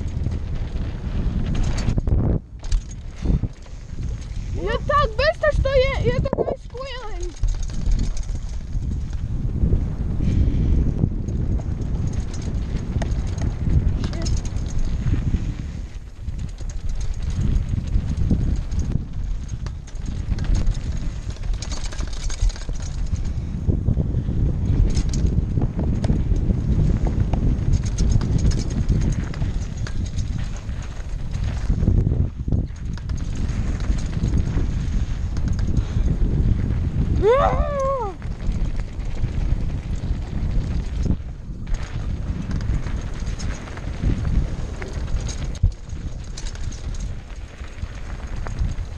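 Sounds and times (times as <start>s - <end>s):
bike knocking and rattling: 0.0s - 48.9s
tyres rumbling on gravel trail: 0.0s - 48.9s
wind on camera: 0.0s - 48.9s.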